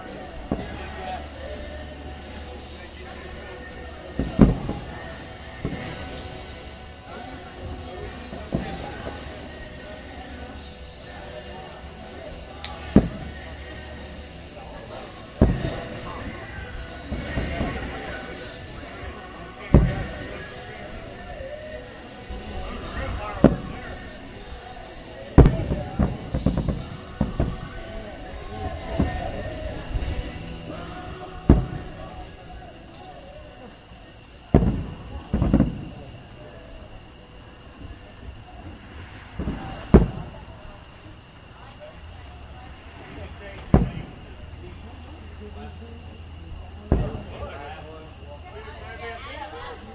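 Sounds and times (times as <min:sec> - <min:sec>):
fireworks booms: 0:00.3 - 0:01.4, 0:04.1 - 0:33.3, 0:34.4 - 0:37.0, 0:37.7 - 0:41.1, 0:43.0 - 0:44.7, 0:46.8 - 0:47.9.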